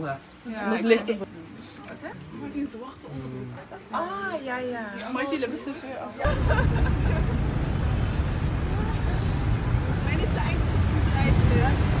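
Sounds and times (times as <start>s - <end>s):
city street traffic rumble: 6.2s - 12.0s.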